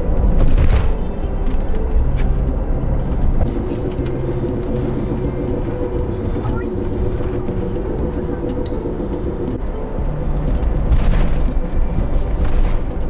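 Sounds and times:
engine and road noise in van: 0:00.0 - 0:13.0.

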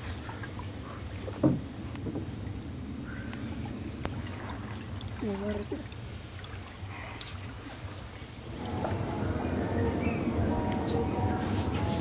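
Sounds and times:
water sloshing around a boat: 0:00.0 - 0:12.0
steady low rumble: 0:08.4 - 0:12.0.

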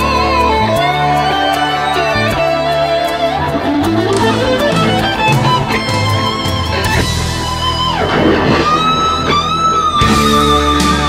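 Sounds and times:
electric guitar lead: 0:00.0 - 0:11.0
rock band backing: 0:00.0 - 0:11.0.

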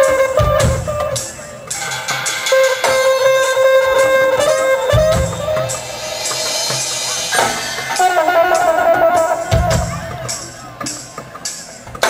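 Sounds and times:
band playing percussion jam: 0:00.0 - 0:12.0
sustained melody line: 0:00.0 - 0:12.0.

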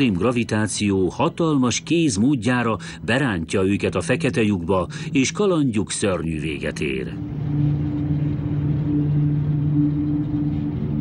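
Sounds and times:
spacecraft rumbling drone: 0:02.7 - 0:11.0.

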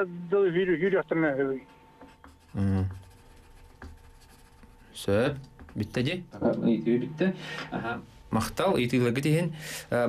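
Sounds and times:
pencil scratching on paper: 0:02.0 - 0:05.0.

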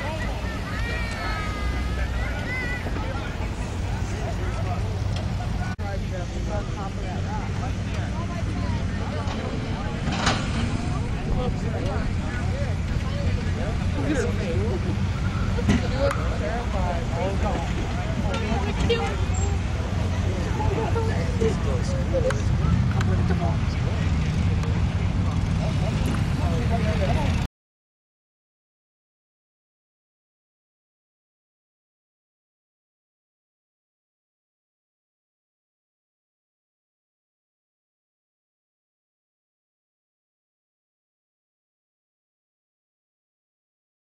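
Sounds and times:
chatter of many voices: 0:00.0 - 0:27.5
engines rumbling at low revs: 0:00.0 - 0:27.5.

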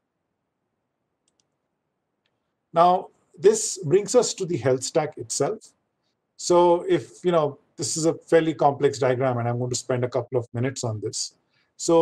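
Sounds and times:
faint clicks: 0:01.2 - 0:02.6.

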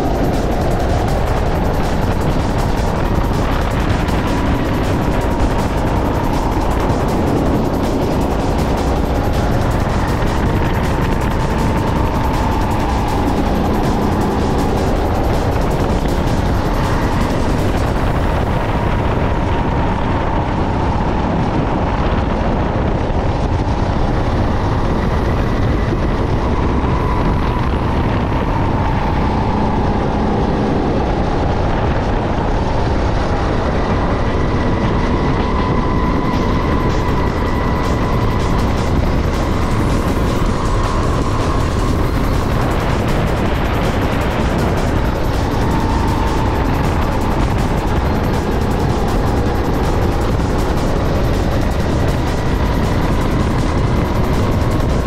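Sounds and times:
go-kart engine running hard: 0:00.0 - 0:55.0
road and wind noise: 0:00.0 - 0:55.0.

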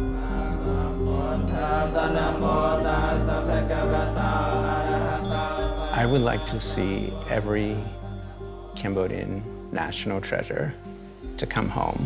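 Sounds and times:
monks chanting: 0:00.0 - 0:10.6
musical drone: 0:00.0 - 0:11.3.

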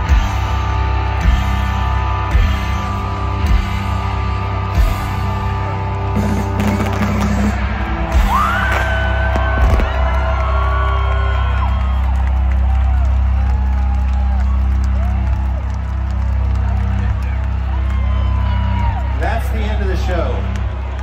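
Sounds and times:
drums: 0:00.0 - 0:17.2
crowd whooping and yelling: 0:06.8 - 0:21.0.

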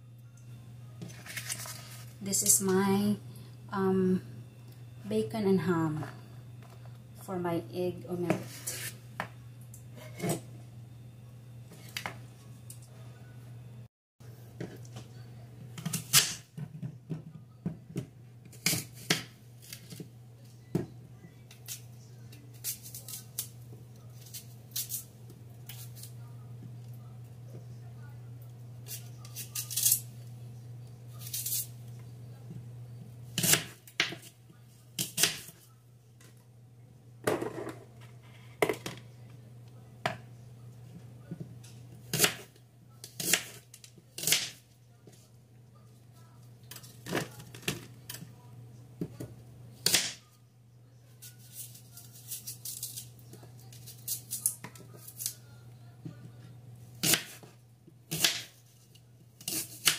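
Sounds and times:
steady low hum: 0:00.0 - 0:59.7.

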